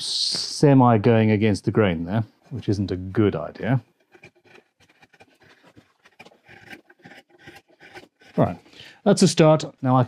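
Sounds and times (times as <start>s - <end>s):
knife blade scraping wood: 3.9s - 8.7s.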